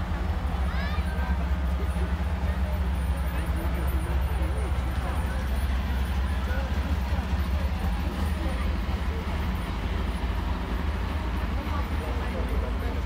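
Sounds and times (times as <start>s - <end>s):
crowd talking: 0.0s - 13.0s
heavy vehicle engines rumbling: 0.0s - 13.0s.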